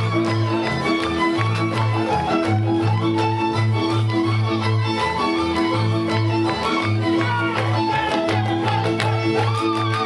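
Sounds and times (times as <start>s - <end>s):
folk dance music: 0.0s - 10.0s.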